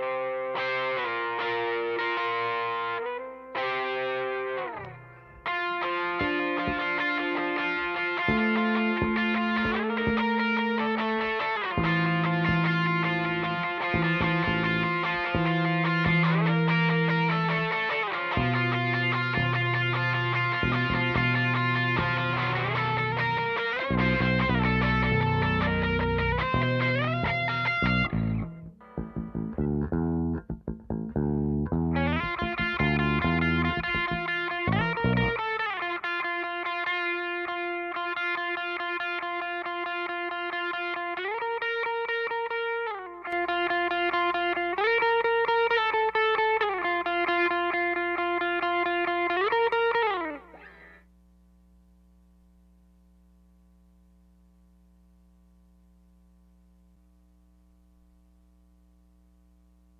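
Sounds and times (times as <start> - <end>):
distorted lead guitar tone: 0.0 - 51.1
faint amplifier hum: 0.0 - 59.9
electric bass playing low notes: 4.8 - 35.6.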